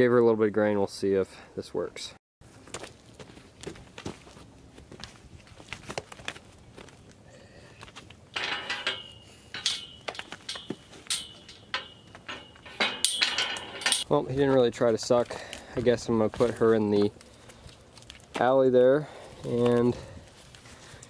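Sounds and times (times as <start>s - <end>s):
knocks and footsteps: 2.4s - 7.2s, 7.8s - 18.5s
metal panels clinking and rattling: 8.3s - 14.1s
ringing metallic jangling: 8.4s - 14.0s.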